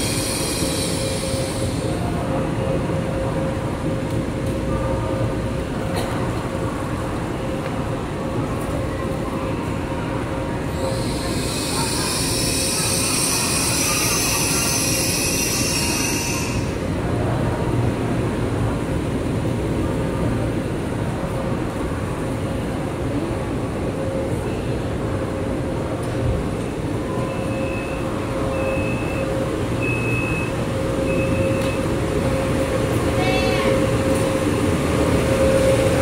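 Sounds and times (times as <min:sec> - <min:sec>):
train low rumble: 0:00.0 - 0:36.0
short high beeps: 0:27.1 - 0:31.8.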